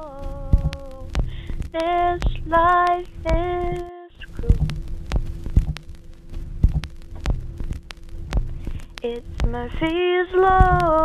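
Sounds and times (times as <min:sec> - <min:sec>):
low beats: 0:00.0 - 0:11.0
low hum-like tone: 0:00.0 - 0:11.0
sharp clicks: 0:00.0 - 0:11.0.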